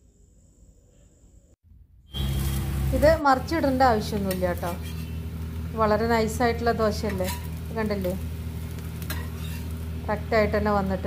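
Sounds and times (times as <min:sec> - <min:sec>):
dosa sizzling on griddle: 0:02.1 - 0:11.0
spatula scraping griddle: 0:03.9 - 0:05.4, 0:06.8 - 0:09.9.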